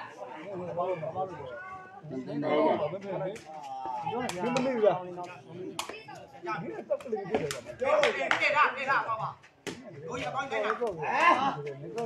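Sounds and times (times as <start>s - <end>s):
spectators talking: 0.0s - 12.0s.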